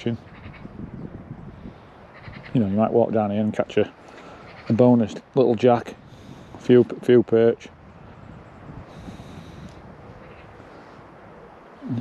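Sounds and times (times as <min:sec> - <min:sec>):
low outdoor hiss: 0:00.0 - 0:12.0.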